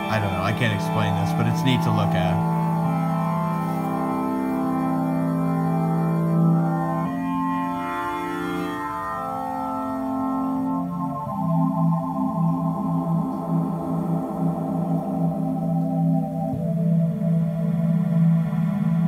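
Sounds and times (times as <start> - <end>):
sustained synthesizer chords: 0.0 - 19.0.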